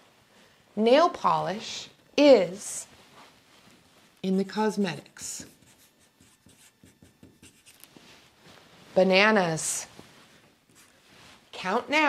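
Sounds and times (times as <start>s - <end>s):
marker writing on paper: 5.2s - 7.9s.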